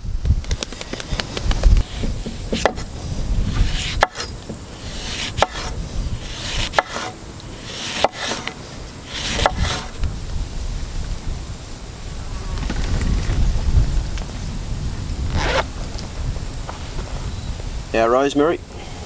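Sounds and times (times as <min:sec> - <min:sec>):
knife slicing lemon: 0:03.5 - 0:09.9.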